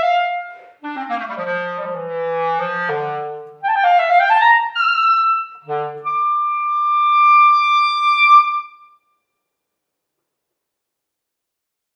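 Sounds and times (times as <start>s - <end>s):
clarinet holding long high note: 0.0s - 8.9s.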